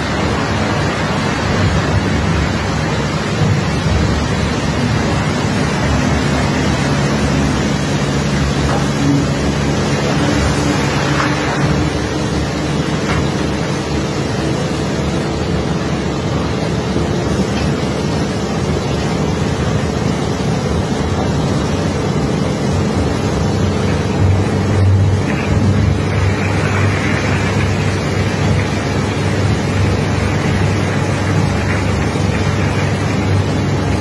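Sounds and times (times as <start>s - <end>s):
engine drone: 0.0s - 34.0s
water rushing from hoses: 0.0s - 34.0s.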